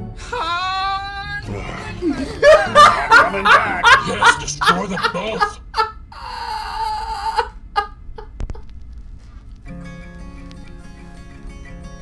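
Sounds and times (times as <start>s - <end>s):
man squealing laugh: 0.2s - 8.4s
gasping burst of laughter: 1.5s - 8.3s.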